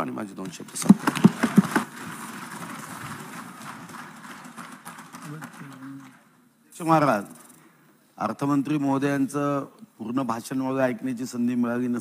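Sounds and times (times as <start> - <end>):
steady hiss: 0.5 - 12.0.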